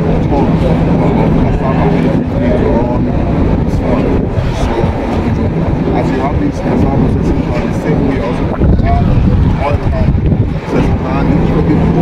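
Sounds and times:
constant hum: 0.0 - 12.0
loud low rumble: 0.0 - 12.0
men talking: 0.0 - 12.0.

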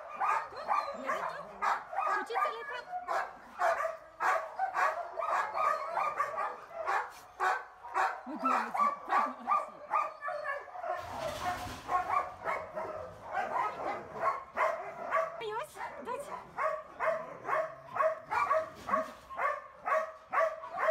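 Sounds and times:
dog barking: 0.0 - 20.9.

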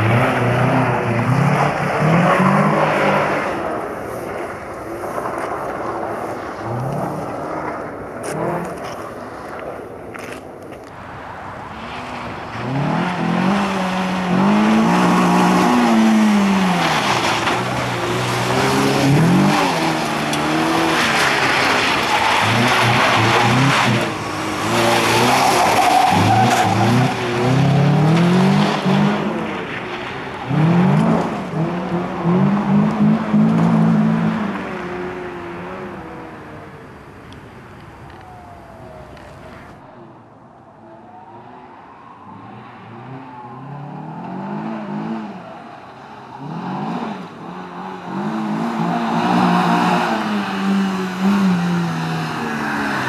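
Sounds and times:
rally car engine revving: 11.9 - 36.3.

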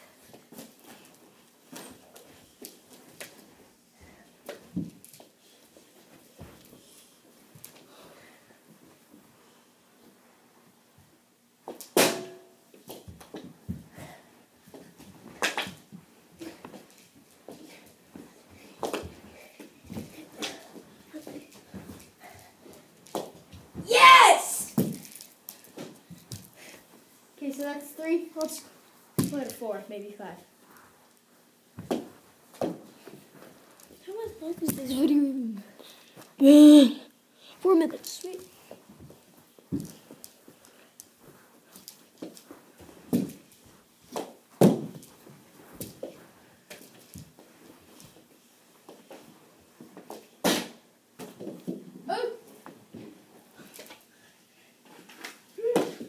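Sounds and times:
sharp loud stick hit: 12.0 - 12.5
child shouting: 23.9 - 24.8.

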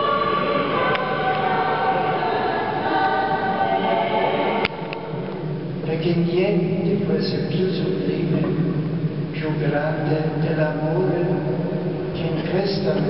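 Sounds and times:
choir singing held notes: 0.0 - 5.7.

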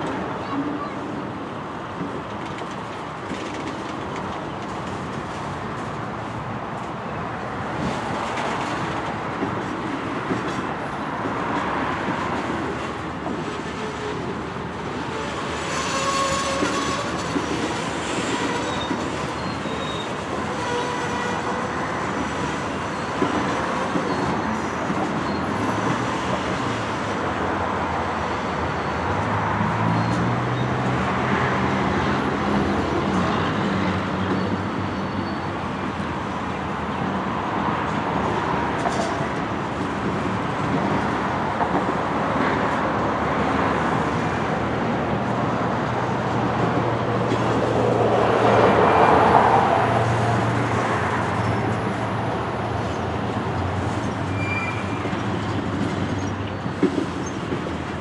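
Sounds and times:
freight train rumbling by: 0.0 - 58.0
train wheel clatter: 2.0 - 6.0, 15.4 - 21.4, 53.3 - 58.0
high wheel squeal: 15.1 - 25.9, 54.3 - 55.2.

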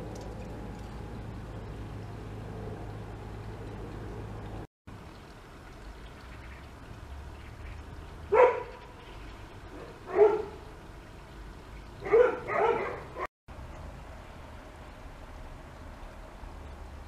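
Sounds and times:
dog barking: 8.3 - 8.7, 9.8 - 10.6, 12.0 - 13.3.

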